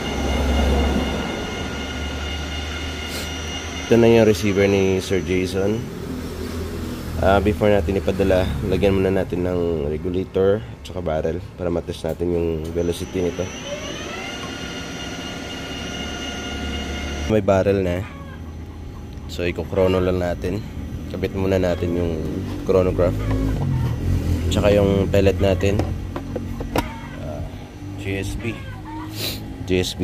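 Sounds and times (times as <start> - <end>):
mechanical drone with whine: 0.0 - 9.8, 12.6 - 17.9
steady low hum: 0.0 - 23.0.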